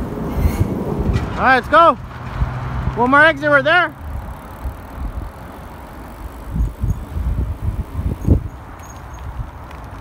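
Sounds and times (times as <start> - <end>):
bicycle tyres rolling: 0.0 - 10.0
wind buffeting microphone: 4.0 - 10.0.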